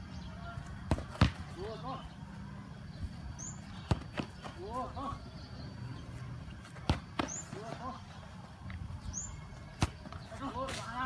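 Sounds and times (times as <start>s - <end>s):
football kick thud: 0.9s - 1.4s, 6.8s - 7.5s.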